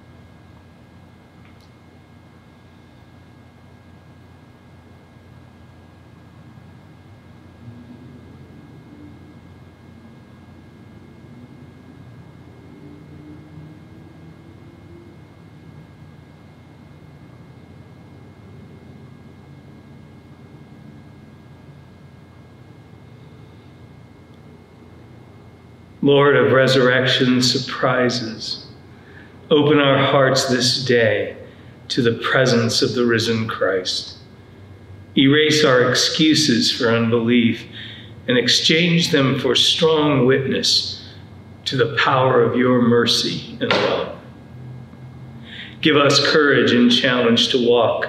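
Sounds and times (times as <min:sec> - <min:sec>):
faint high whine: 0:00.0 - 0:48.0
steady low hiss: 0:19.3 - 0:48.0.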